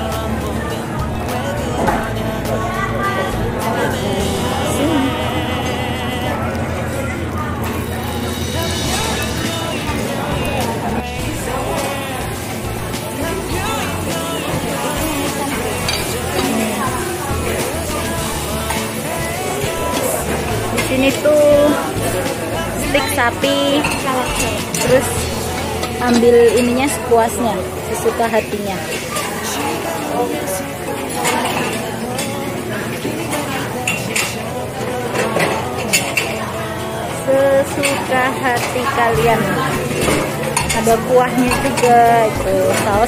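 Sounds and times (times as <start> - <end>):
background chatter: 0.0 - 43.0
background music with singing: 0.0 - 43.0.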